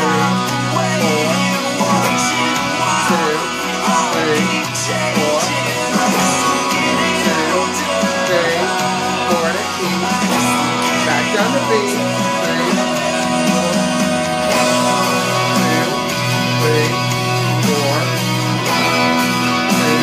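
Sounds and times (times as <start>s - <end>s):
electric guitar strumming chords: 0.0s - 20.0s
person singing: 0.0s - 20.0s.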